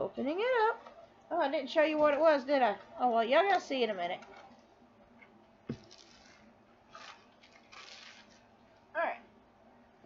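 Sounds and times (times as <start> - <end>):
packaging rustling: 5.7 - 8.4.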